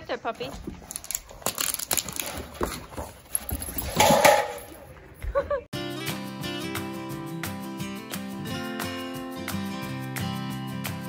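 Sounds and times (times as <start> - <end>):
acoustic guitar music: 5.8 - 11.0.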